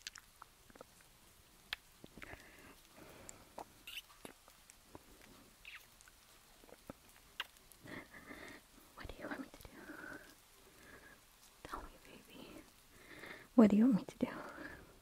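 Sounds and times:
mouth clicks: 1.7 - 8.4
woman whispering: 7.8 - 10.4, 11.0 - 12.8, 13.5 - 15.0.

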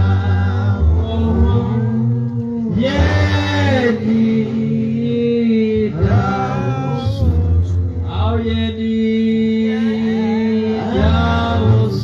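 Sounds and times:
man chant-like singing: 0.0 - 12.0.

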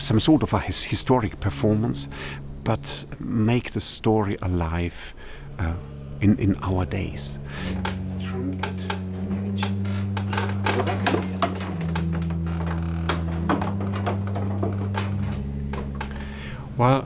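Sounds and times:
pipe organ chords: 0.0 - 17.0
wooden stop knobs clicking: 7.4 - 16.9.

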